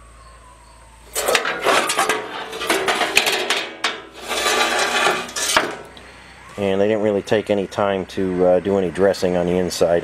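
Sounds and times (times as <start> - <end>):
metal clanks: 1.1 - 6.0
sheet metal scraping: 1.1 - 6.0.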